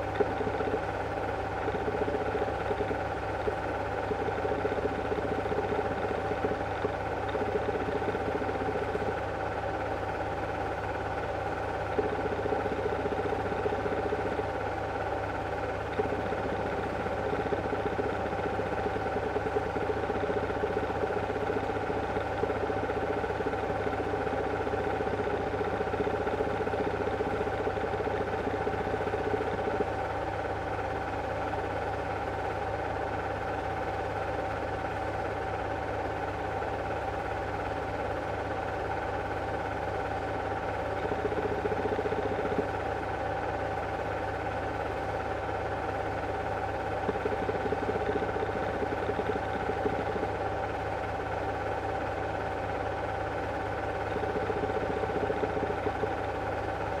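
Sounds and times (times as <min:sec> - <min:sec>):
constant whine: 0:00.0 - 0:57.0
projector motor and fan hum: 0:00.0 - 0:57.0.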